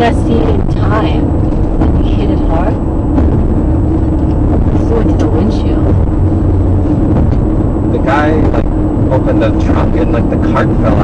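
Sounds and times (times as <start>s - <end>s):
road and engine rumble inside car: 0.0s - 11.0s.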